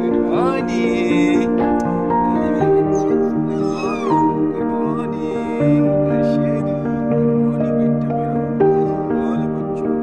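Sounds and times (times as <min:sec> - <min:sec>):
dog whining: 0:03.5 - 0:04.4.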